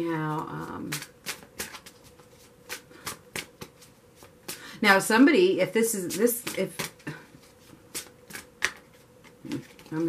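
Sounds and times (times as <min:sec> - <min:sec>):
cards being shuffled: 0:00.3 - 0:04.6, 0:06.0 - 0:10.0.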